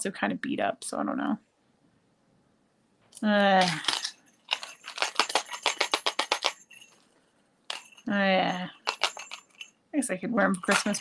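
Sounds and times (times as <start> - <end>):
jewelry clinking and rattling: 3.6 - 7.1, 7.7 - 9.8, 10.5 - 11.0.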